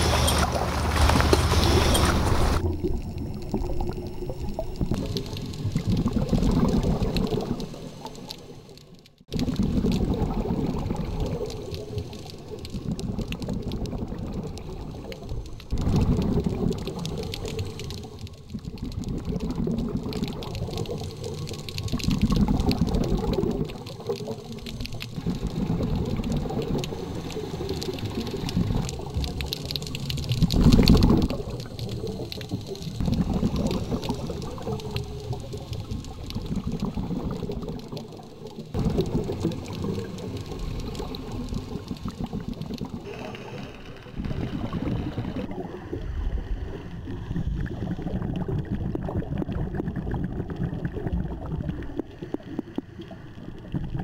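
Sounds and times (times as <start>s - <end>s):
underwater exhaled bubbles: 0.0s - 54.0s.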